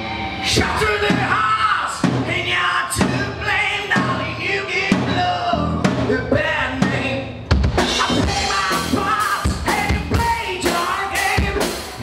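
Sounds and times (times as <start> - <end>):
rock band playing: 0.0 - 12.0
man singing into microphone: 0.4 - 12.0.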